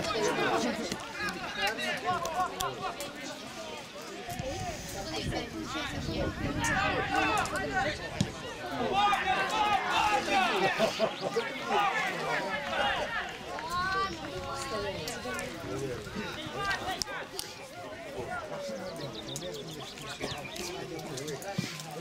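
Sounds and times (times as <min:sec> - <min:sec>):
voices shouting and calling out: 0:00.0 - 0:22.0.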